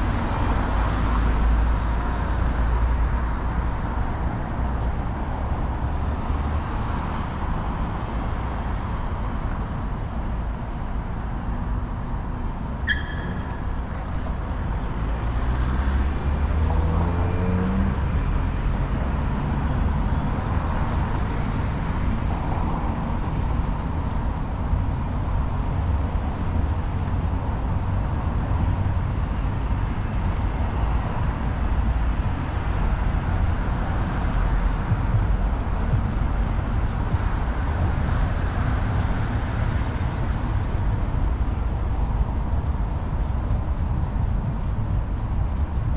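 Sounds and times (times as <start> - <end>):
cars passing on street: 0.0 - 45.9.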